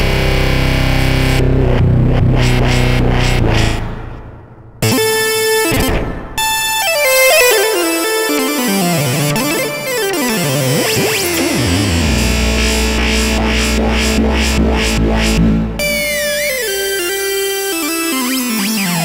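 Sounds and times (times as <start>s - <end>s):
synthesizer playing: 6.9s - 17.1s.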